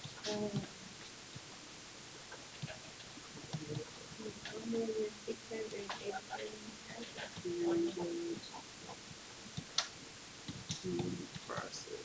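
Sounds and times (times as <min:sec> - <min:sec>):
short low hummed voice: 0:10.8 - 0:12.0.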